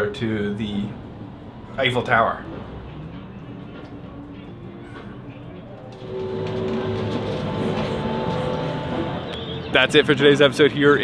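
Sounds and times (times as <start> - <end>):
cable car whine: 2.4 - 9.8
cable car mechanical rumble: 5.8 - 9.4.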